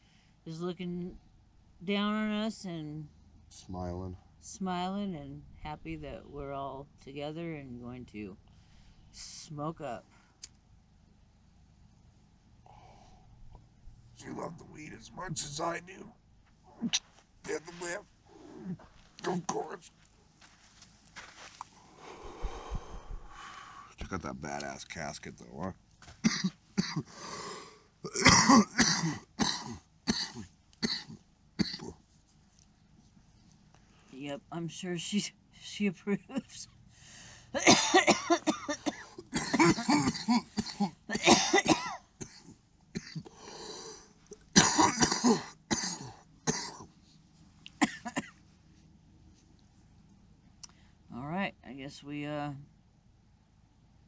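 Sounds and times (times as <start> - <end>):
person exhaling smoke: 21.9 - 23.9
man coughing hard: 26.2 - 27.2, 28.1 - 32.0, 37.6 - 43.4, 44.5 - 46.9, 47.8 - 48.3.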